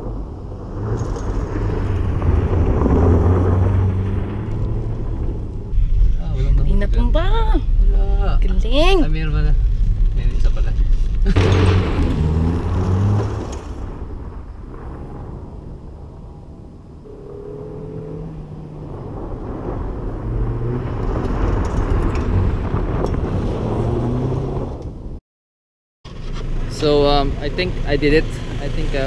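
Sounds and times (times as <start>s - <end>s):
car engine driven hard: 0.0s - 7.2s, 8.4s - 25.2s.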